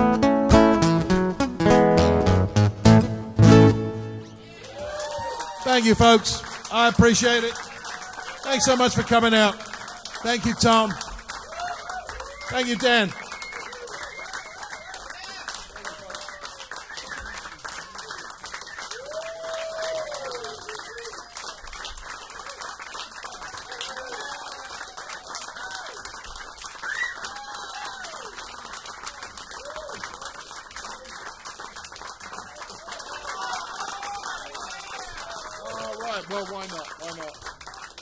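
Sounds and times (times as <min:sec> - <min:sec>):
audience applauding: 0:04.3 - 0:38.0
whoops and calls: 0:04.6 - 0:05.7, 0:11.5 - 0:17.6, 0:18.7 - 0:21.2, 0:26.8 - 0:28.2.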